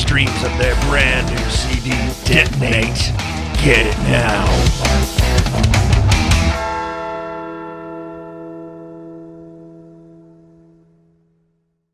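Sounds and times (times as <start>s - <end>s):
rock song final hit: 0.0s - 7.2s.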